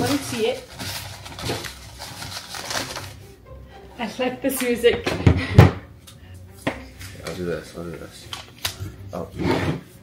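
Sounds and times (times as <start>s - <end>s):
paper slips rustling: 0.0s - 3.2s
background music: 0.0s - 10.0s.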